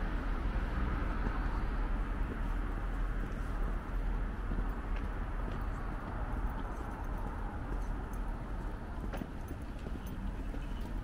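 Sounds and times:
footsteps on pavement: 0.1s - 11.0s.

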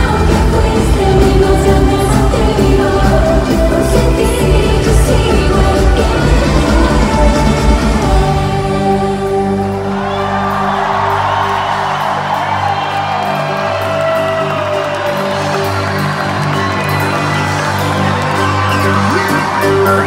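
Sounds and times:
crowd cheering and whooping: 9.6s - 20.0s.

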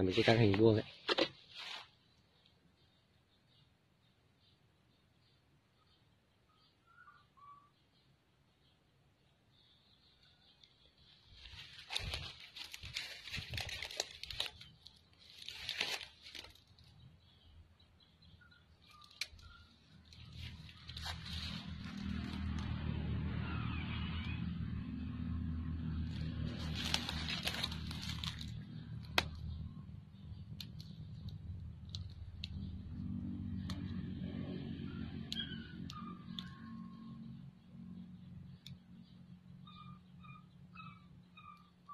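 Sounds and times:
nylon line handled: 1.0s - 1.9s, 26.6s - 28.5s
dry leaves rustling: 11.3s - 16.9s, 20.1s - 22.9s, 25.8s - 29.4s.

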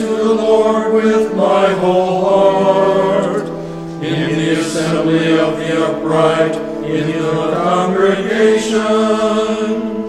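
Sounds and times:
cantor singing: 0.0s - 10.0s
congregation singing a psalm: 0.0s - 10.0s
organ chords: 0.0s - 10.0s.

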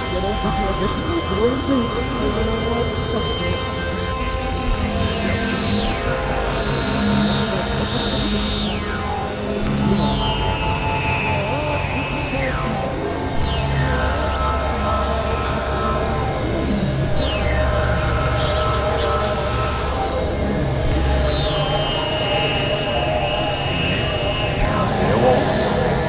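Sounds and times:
low synth drone: 0.0s - 26.0s
dense noisy texture: 14.4s - 26.0s.

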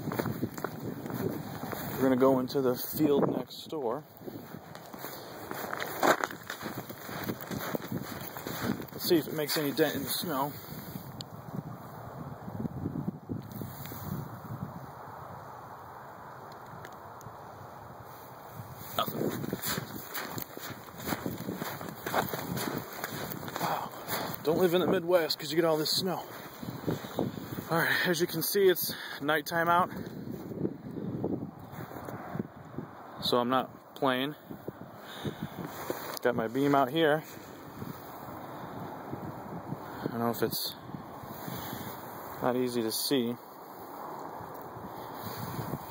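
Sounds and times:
wind buffeting microphone: 0.0s - 33.4s, 34.4s - 42.9s, 43.9s - 45.9s.

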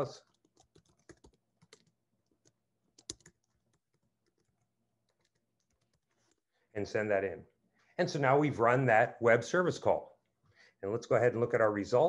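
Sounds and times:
keyboard typing: 0.0s - 6.4s.

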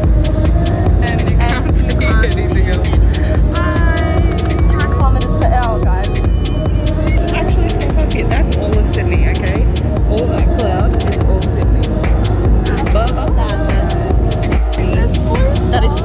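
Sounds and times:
indistinct voices: 0.0s - 16.0s.

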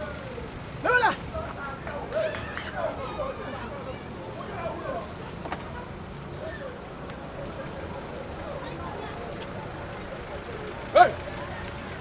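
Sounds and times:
faint voices: 0.0s - 12.0s
road traffic rumble: 0.0s - 12.0s.

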